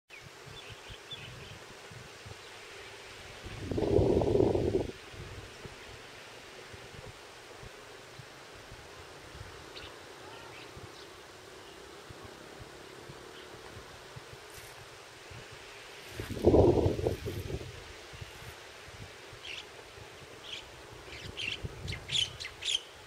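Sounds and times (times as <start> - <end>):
outdoor ambience: 0.1 - 23.0.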